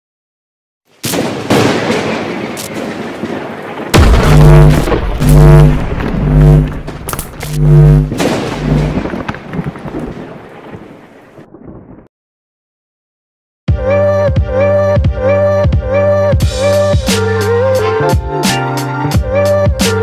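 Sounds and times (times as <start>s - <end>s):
lightning crackling: 1.1s - 12.1s
thunderclap: 1.2s - 12.1s
low thunder rumble: 3.2s - 12.0s
rain: 8.6s - 12.0s.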